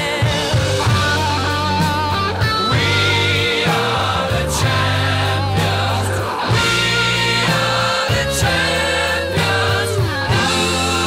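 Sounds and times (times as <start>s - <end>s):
song with singing and beat: 0.0s - 11.0s.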